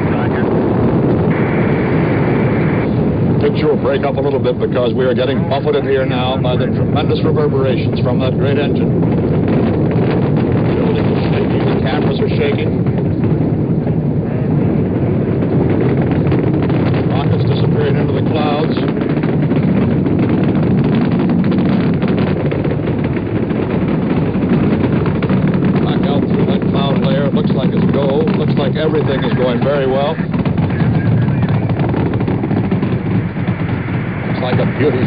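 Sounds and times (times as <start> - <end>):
rocket engines rumbling: 0.0 - 35.0.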